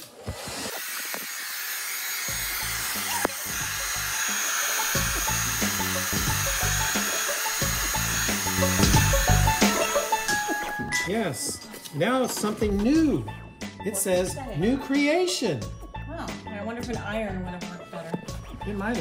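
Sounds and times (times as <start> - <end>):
hair dryer blowing: 0.0 - 10.8
background music: 2.3 - 19.0.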